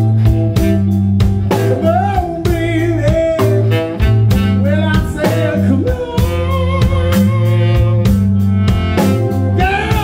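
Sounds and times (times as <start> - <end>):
blues rock band playing: 0.0 - 10.0
wavering lead guitar melody: 0.0 - 10.0.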